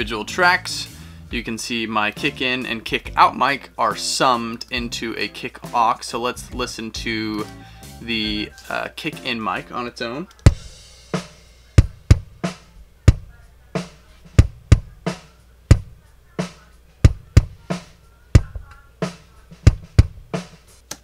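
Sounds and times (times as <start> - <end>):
kick drum hits: 10.5 - 10.7, 11.8 - 13.3, 14.3 - 15.0, 15.7 - 16.0, 17.0 - 17.8, 18.4 - 18.7, 19.6 - 20.4.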